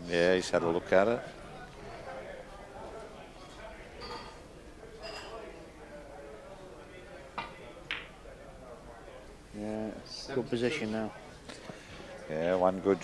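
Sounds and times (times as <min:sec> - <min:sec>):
murmur of voices: 0:00.0 - 0:13.0.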